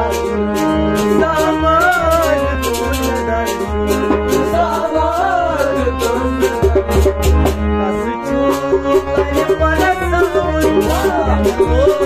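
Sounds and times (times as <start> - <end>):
harmonium chords: 0.0 - 12.0
steady percussion beat: 0.0 - 12.0
man singing: 1.0 - 6.9, 7.7 - 12.0.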